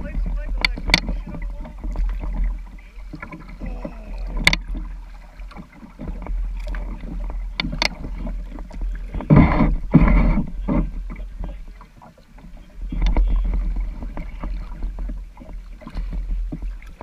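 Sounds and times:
sharp knocks on kayak: 0.0s - 11.6s, 12.8s - 17.0s
water lapping at kayak hull: 0.0s - 17.0s.

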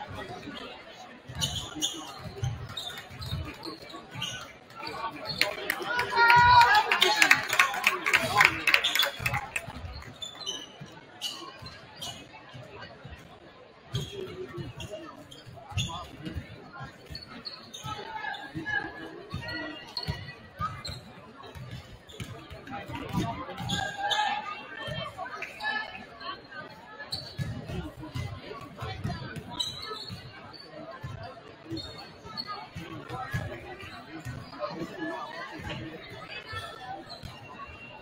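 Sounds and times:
crowd chatter: 0.0s - 38.0s.

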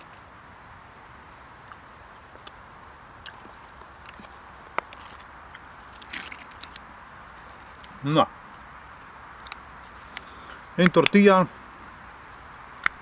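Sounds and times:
faint background hiss: 0.0s - 13.0s
plastic pouch crinkling: 4.2s - 6.8s.

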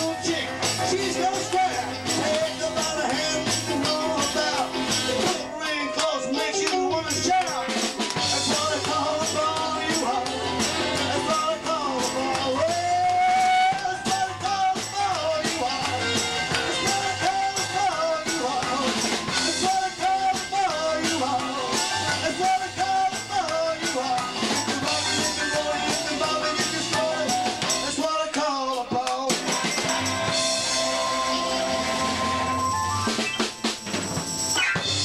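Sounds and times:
electric guitars playing: 0.0s - 27.6s, 29.5s - 35.0s
man singing: 0.0s - 29.6s.

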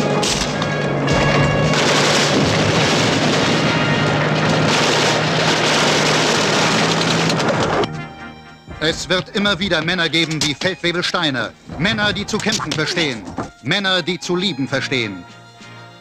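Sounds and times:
gunfire: 0.1s - 8.0s
explosions: 0.3s - 7.8s.

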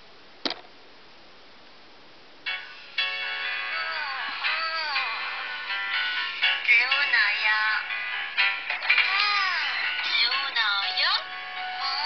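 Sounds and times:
song through phone loudspeaker: 2.4s - 12.0s.

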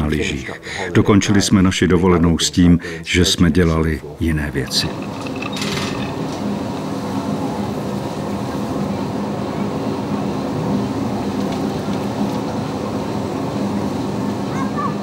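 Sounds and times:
constant hum: 0.0s - 15.0s.

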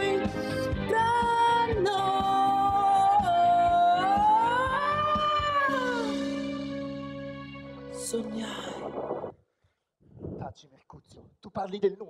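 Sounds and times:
sustained backing music chord: 3.6s - 9.3s.

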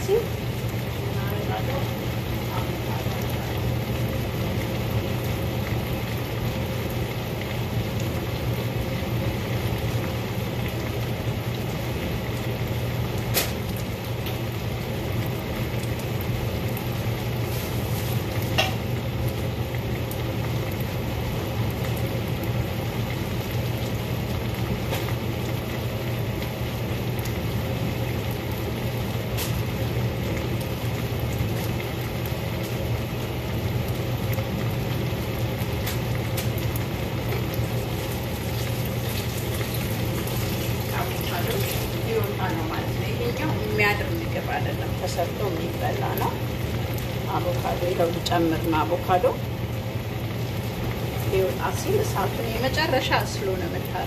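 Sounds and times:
constant low hum: 0.0s - 54.0s
vegetables sizzling in a pan: 0.0s - 54.0s.

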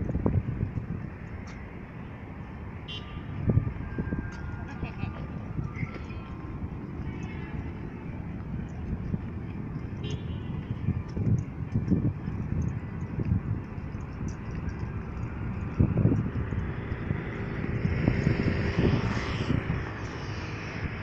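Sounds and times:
low urban rumble: 0.0s - 21.0s.

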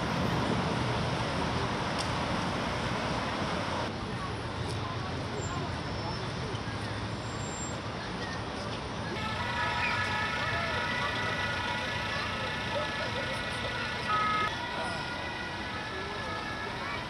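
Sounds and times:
truck high whine: 9.1s - 17.0s.

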